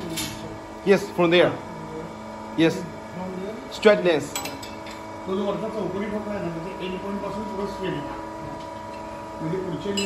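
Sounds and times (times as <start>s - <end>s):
electrical hum with high tone: 0.0s - 10.0s.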